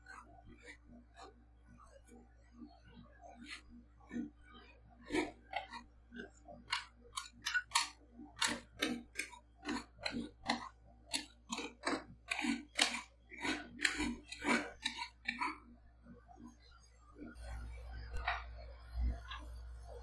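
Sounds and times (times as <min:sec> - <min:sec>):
spatulas scraping metal plate: 0:05.1 - 0:15.6.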